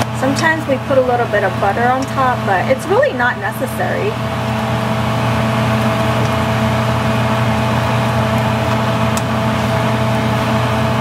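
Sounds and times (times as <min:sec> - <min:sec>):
exhaust fan humming: 0:00.0 - 0:11.0.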